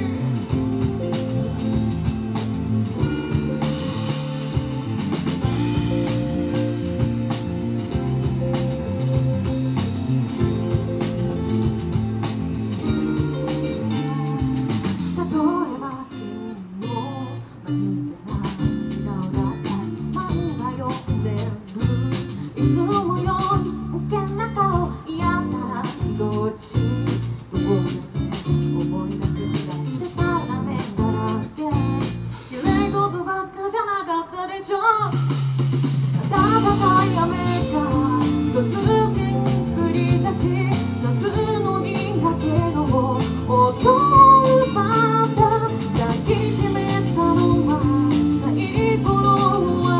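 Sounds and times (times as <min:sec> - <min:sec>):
pop rock band through pa: 0:00.0 - 0:49.9
person singing: 0:12.8 - 0:35.2, 0:36.3 - 0:49.9.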